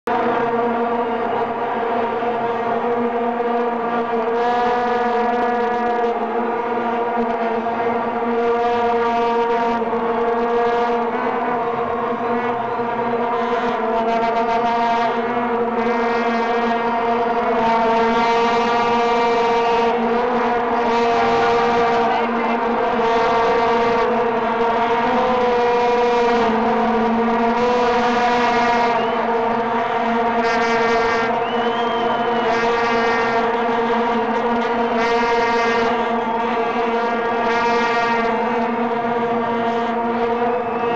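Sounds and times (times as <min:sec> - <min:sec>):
vuvuzelas droning: 0:00.0 - 0:40.9.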